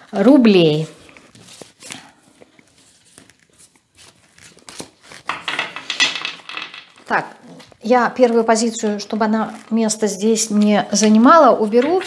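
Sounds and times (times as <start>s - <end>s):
deck of cards rustling: 0.0s - 12.0s.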